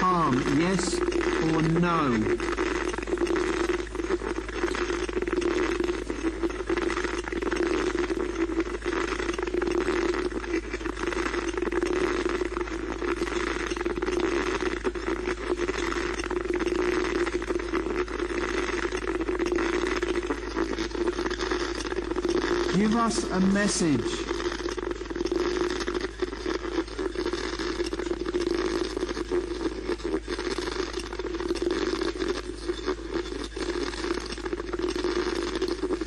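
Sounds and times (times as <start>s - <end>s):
wavering hum: 0.0s - 2.5s
static hiss: 0.0s - 36.0s.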